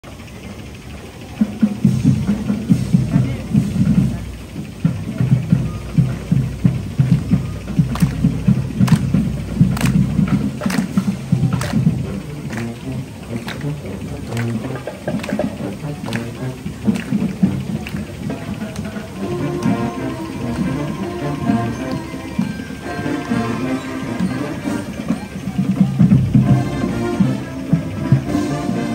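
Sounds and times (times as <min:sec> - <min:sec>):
marching band music: 0:00.0 - 0:28.9
drum strikes: 0:01.6 - 0:28.9
brass holding notes: 0:01.8 - 0:28.9.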